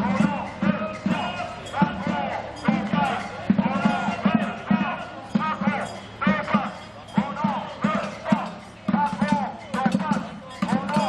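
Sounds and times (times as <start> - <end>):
drum beating: 0.0 - 11.0
marchers chanting and calling: 0.0 - 11.0.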